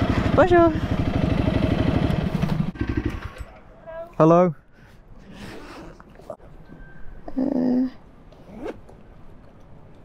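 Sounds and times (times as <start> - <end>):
motorcycle engine idling: 0.0 - 3.4.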